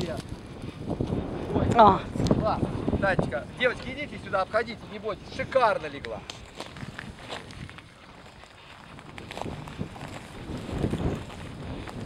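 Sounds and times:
footsteps through grass: 0:04.8 - 0:12.0.

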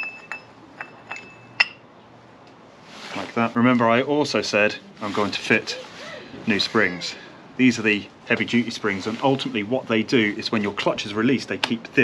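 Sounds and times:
metal parts clinking: 0:00.0 - 0:01.8.

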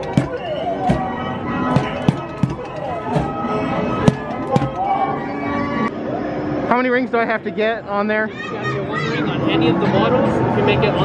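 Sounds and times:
padded mallet knocking on targets: 0:00.0 - 0:03.4, 0:04.1 - 0:04.8
arcade machine music: 0:00.0 - 0:05.3.

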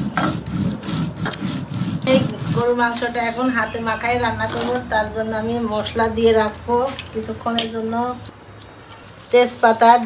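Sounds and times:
stone roller grinding on stone slab: 0:00.0 - 0:03.1.

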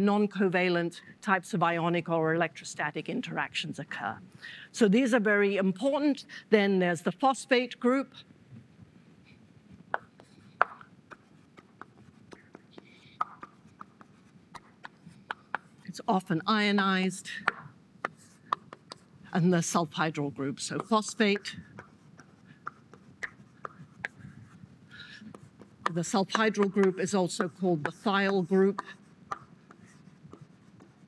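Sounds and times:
chalk tapping on blackboard: 0:09.9 - 0:15.9, 0:17.4 - 0:19.1, 0:19.9 - 0:31.0
chalk scratching on blackboard: 0:09.9 - 0:16.0, 0:17.4 - 0:31.0.

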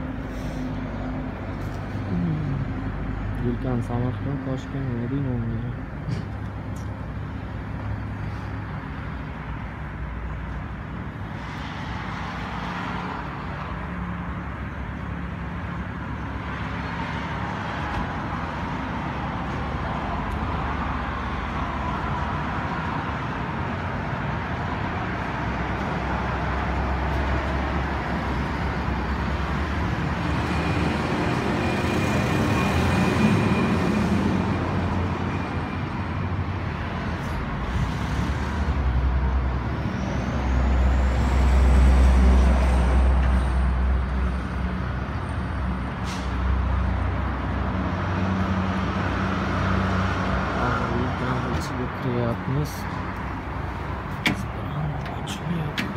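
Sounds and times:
road traffic rumble: 0:00.0 - 0:55.9.

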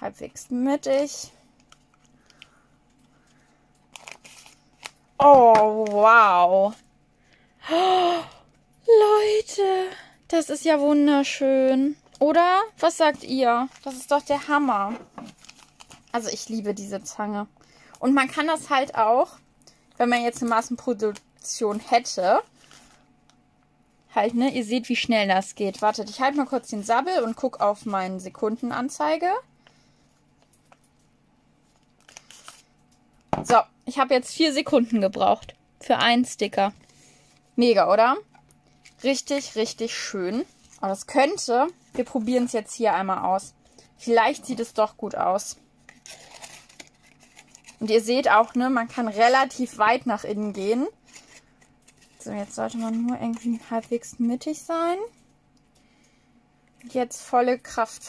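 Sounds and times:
paper rustle: 0:01.6 - 0:05.0, 0:13.0 - 0:16.1, 0:31.6 - 0:32.7, 0:45.8 - 0:49.4, 0:51.0 - 0:54.1
paper sticker strip handled: 0:45.9 - 0:49.2, 0:51.1 - 0:54.0.

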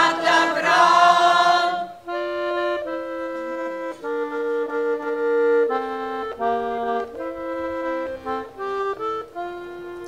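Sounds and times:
accordion playing slow melody: 0:00.0 - 0:10.0.

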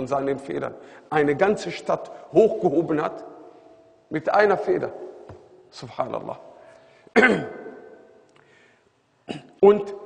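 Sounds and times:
man clearing his throat: 0:07.1 - 0:07.8, 0:09.3 - 0:09.6.

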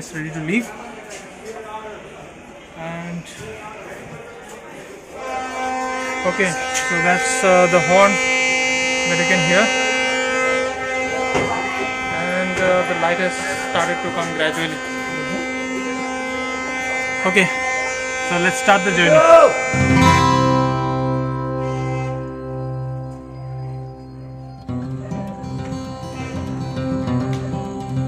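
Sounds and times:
steady multi-pitched buzz: 0:05.0 - 0:28.0
train horn long blast: 0:05.1 - 0:24.4, 0:26.0 - 0:26.9.

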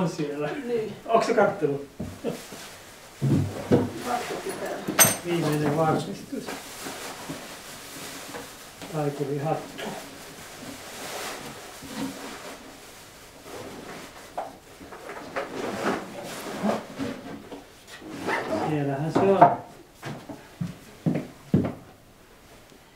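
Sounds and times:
person speaking: 0:00.0 - 0:02.4, 0:03.9 - 0:06.6, 0:08.9 - 0:10.0.

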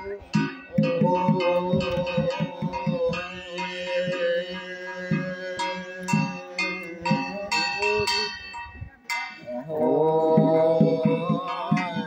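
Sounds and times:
man chanting: 0:00.0 - 0:08.5, 0:09.4 - 0:12.0
bell ringing: 0:00.0 - 0:09.5.

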